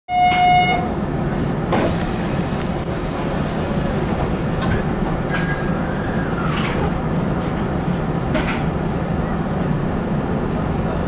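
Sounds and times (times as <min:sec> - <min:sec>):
electric train rumbling on rails: 0:00.1 - 0:11.0.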